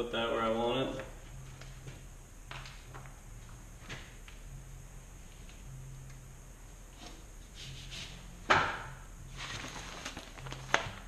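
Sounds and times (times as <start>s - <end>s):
paper sheet rustling: 9.4s - 11.0s.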